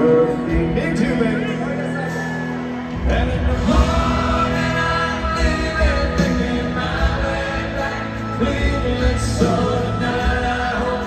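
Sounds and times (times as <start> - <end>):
country band playing with singing: 0.0 - 11.0
drums and bass beat: 3.0 - 11.0.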